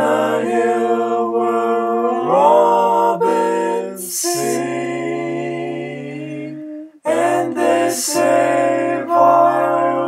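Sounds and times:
a cappella vocal harmony: 0.0s - 10.0s.

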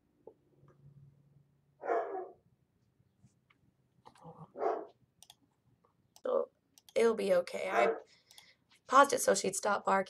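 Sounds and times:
dog barking: 1.8s - 2.4s, 4.5s - 5.0s, 7.7s - 8.1s.

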